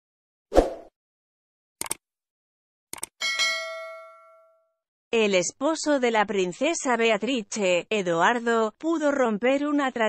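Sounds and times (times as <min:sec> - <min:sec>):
bell ding: 0:03.2 - 0:04.8.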